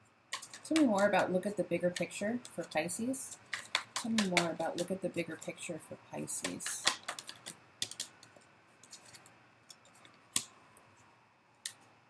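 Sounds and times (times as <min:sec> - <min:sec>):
cards shuffling and clicking: 0:00.3 - 0:01.3, 0:01.9 - 0:05.6, 0:06.3 - 0:10.5.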